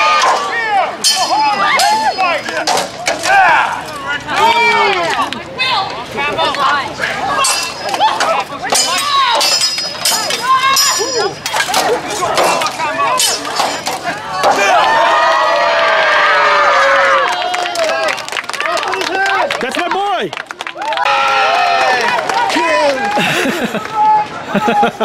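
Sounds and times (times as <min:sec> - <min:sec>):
swords clashing: 0:00.0 - 0:03.7, 0:07.4 - 0:14.8
scattered voices: 0:00.0 - 0:15.2
crowd cheering and shouting: 0:00.0 - 0:25.0.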